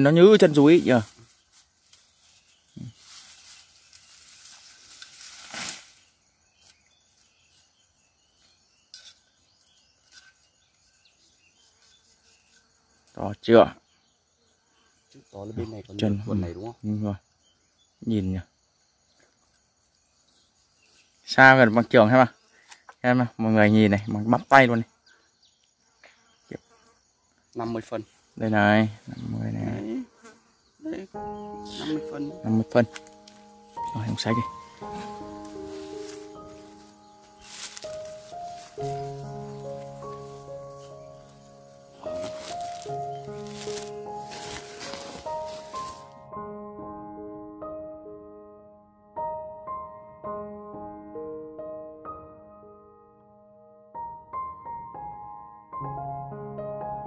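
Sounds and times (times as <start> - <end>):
rustling leaves and brush: 0.0 - 13.2, 30.5 - 46.2
faint insect sound: 0.0 - 46.5
person saying a word: 31.7 - 32.3.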